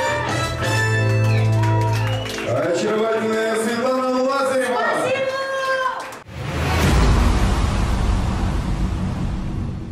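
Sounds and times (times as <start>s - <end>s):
deep rumbling whoosh: 6.3s - 9.9s.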